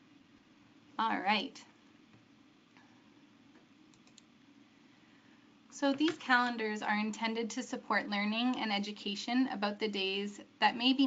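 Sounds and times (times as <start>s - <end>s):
faint clicks: 3.5s - 4.3s.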